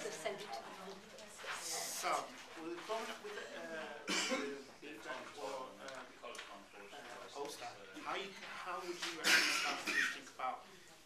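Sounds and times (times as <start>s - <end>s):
quiet background talk: 0.0s - 11.0s
person coughing: 4.1s - 4.6s, 9.2s - 10.2s.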